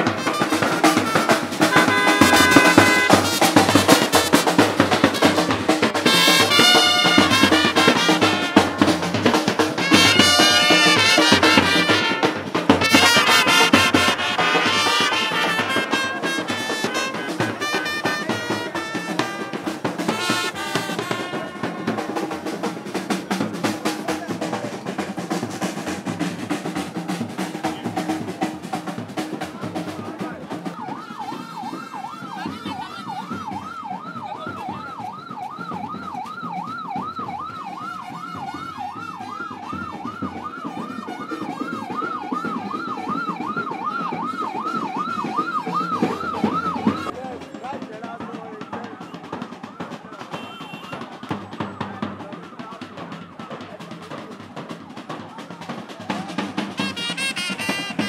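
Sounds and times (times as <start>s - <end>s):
band music: 0.0s - 47.3s, 48.9s - 58.0s
procession drumming: 0.0s - 58.0s
fast warbling siren: 0.3s - 3.6s, 6.0s - 8.6s, 30.5s - 47.1s, 48.9s - 51.3s.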